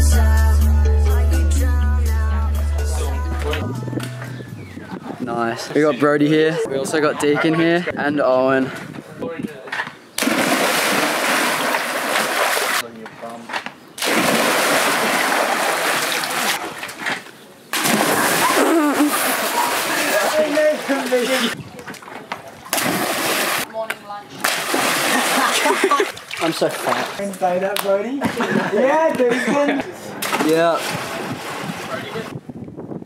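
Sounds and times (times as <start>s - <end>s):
splashing water: 10.2s - 12.8s, 14.0s - 23.8s, 24.4s - 27.4s
voices: 18.2s - 22.9s.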